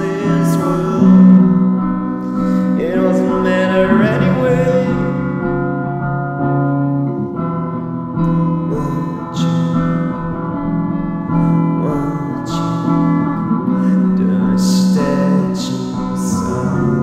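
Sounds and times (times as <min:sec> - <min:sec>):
sliding vocal line: 0:00.0 - 0:01.6, 0:02.3 - 0:05.4, 0:11.8 - 0:17.0
keyboard and guitar chords: 0:00.0 - 0:17.0.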